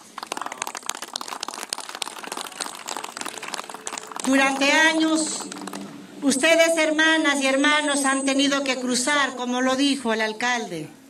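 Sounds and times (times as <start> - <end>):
audience applauding: 0.0 - 6.6
person speaking: 4.2 - 10.1.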